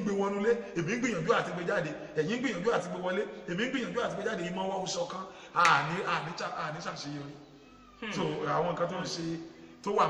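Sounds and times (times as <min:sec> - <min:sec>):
man speaking: 0:00.0 - 0:07.4, 0:08.0 - 0:10.0.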